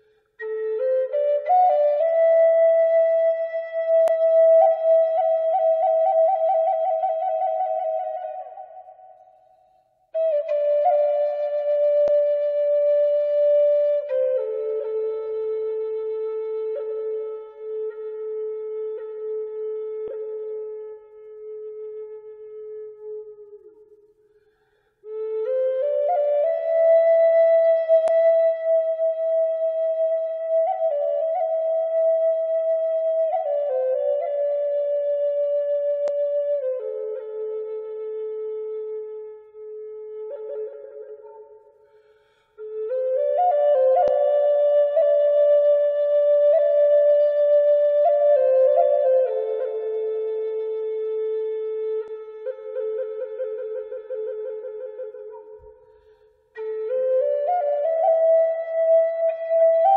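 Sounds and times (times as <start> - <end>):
solo flute melody: 0.0 - 59.9.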